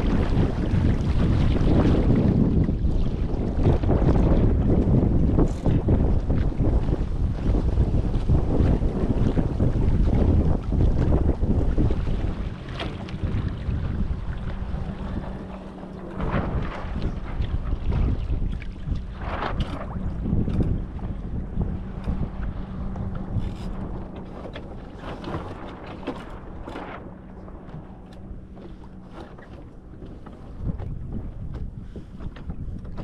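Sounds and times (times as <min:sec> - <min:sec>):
water splashing along hull: 0:00.0 - 0:33.0
wind buffeting microphone: 0:00.0 - 0:33.0.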